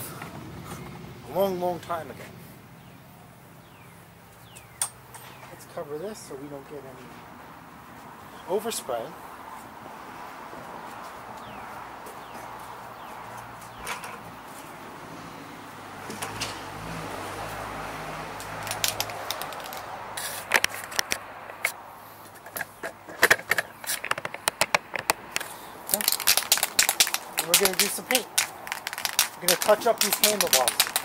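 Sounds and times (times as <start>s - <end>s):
spray can rattling: 18.4s - 21.6s, 23.4s - 31.0s.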